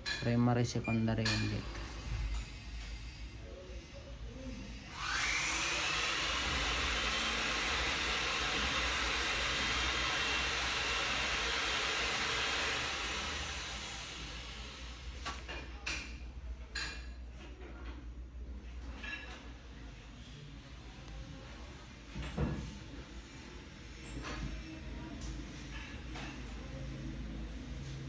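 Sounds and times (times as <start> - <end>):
loud steady hiss: 5.1 - 15.2.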